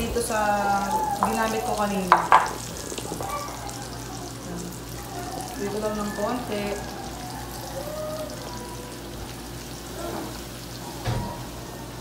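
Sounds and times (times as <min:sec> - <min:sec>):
food frying in oil: 0:00.0 - 0:12.0.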